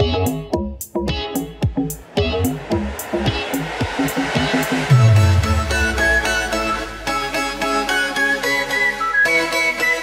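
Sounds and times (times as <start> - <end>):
hissing swell: 1.8 - 8.6.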